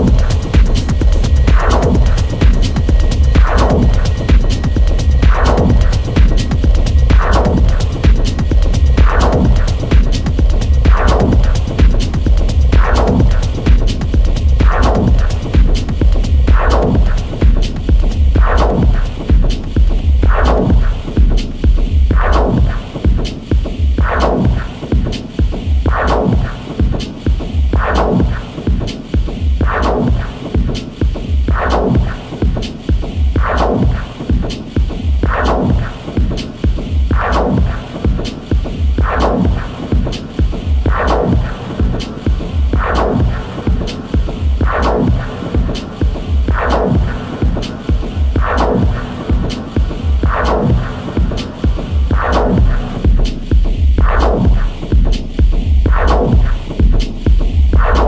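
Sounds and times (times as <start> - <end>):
fast ticking hi-hats: 0.0 - 58.0
pounding techno bass pulse: 0.0 - 58.0.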